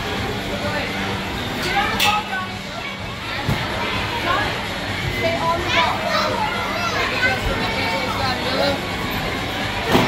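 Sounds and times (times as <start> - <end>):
children shouting and chattering: 1.6 - 10.0.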